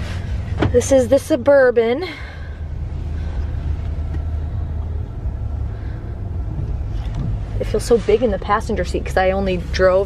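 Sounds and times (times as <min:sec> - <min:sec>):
car engine low rumble: 0:00.0 - 0:10.0.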